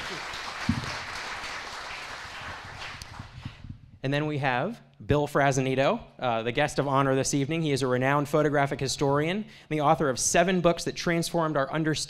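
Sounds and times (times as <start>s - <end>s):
audience applauding: 0.0s - 3.5s.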